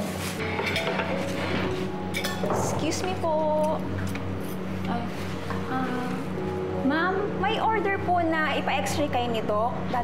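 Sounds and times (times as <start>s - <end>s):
soft background music: 0.0s - 10.0s
plates and cutlery clinking: 0.4s - 3.2s.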